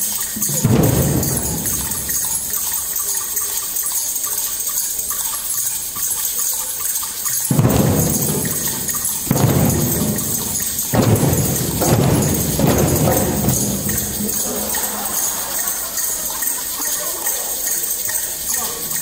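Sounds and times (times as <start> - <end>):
shakers and hand drums hissing: 0.0 - 19.0
hand drum rolls: 0.4 - 2.9, 7.5 - 15.2.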